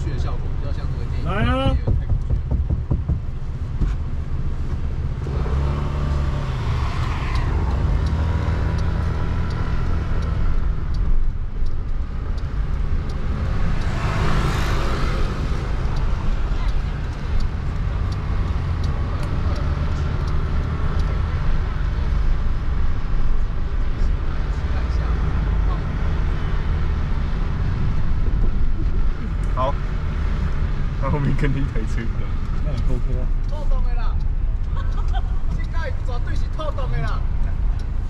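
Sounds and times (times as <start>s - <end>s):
car road and engine rumble: 0.0s - 38.0s
passing tyre and traffic noise: 0.0s - 38.0s.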